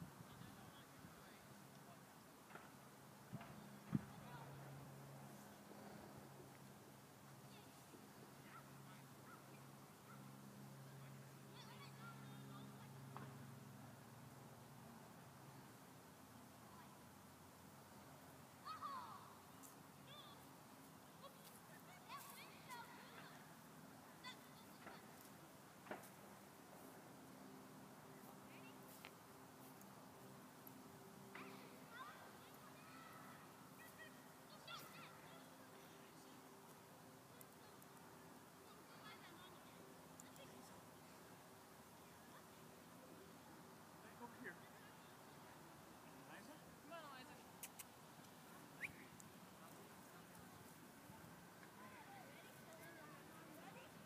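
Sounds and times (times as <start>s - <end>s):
distant bird calls: 48.8s - 49.2s.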